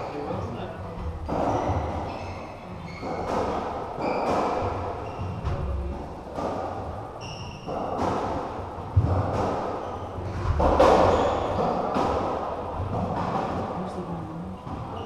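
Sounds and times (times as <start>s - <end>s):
racquetball hitting walls and floor: 0.0s - 14.0s, 14.6s - 15.0s
racket striking ball: 3.0s - 5.6s, 7.6s - 9.8s, 10.5s - 13.5s.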